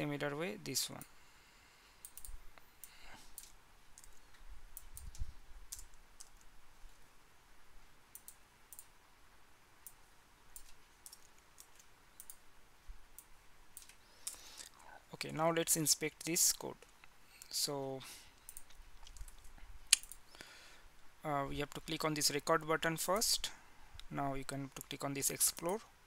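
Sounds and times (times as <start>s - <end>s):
keyboard and mouse clicks: 2.0s - 6.5s, 8.1s - 8.9s, 9.8s - 12.4s, 13.2s - 14.7s, 18.4s - 20.2s.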